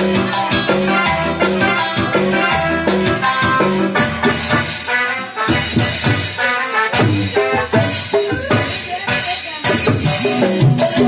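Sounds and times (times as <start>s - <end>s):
electronic keyboard band music: 0.0s - 11.0s
rattling shaker percussion: 0.0s - 11.0s.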